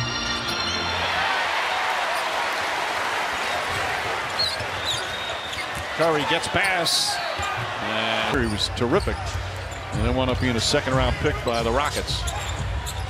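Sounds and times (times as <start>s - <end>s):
music: 0.0s - 1.6s, 8.4s - 13.0s
crowd cheering: 0.0s - 13.0s.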